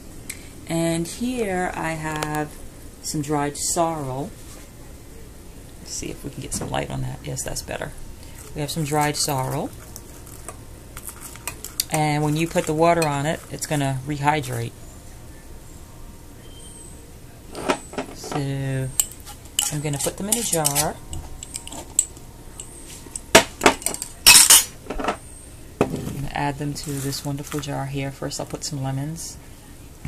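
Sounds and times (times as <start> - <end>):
kitchenware clattering rattle: 17.6 - 22.1, 23.4 - 25.2
dishes and glass clinking: 17.6 - 25.2.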